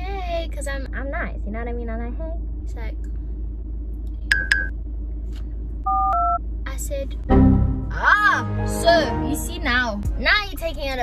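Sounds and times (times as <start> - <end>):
low rumble: 0.0 - 11.0
short high phone beeps: 5.9 - 6.4
telephone keypad tone: 5.9 - 6.4.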